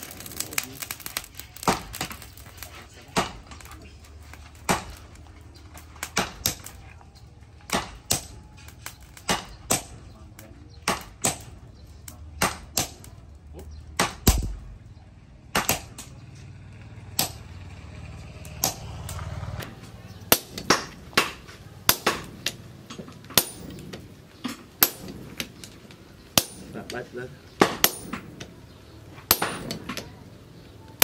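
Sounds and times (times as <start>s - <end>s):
sledgehammer striking metal on anvil: 17.2s - 17.5s, 20.3s - 25.8s, 26.4s - 28.5s, 29.2s - 30.1s.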